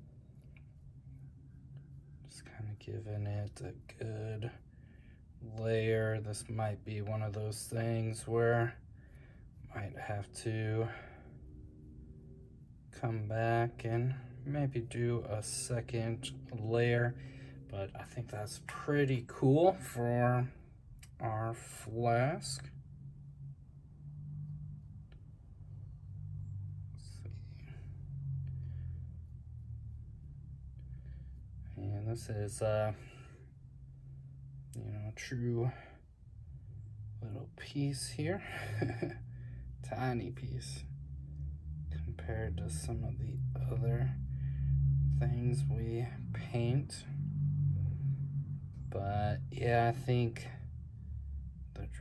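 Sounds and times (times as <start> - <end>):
faint low hum: 0.0 - 52.0
man speaking: 2.3 - 4.6, 5.4 - 8.8, 9.7 - 11.2, 13.0 - 22.7, 27.0 - 27.8, 31.7 - 33.2, 34.8 - 36.0, 37.2 - 39.1, 39.8 - 40.8, 42.0 - 44.2, 45.2 - 47.1, 48.9 - 50.6, 51.8 - 52.0
breath: 17.2 - 17.6, 44.3 - 44.8.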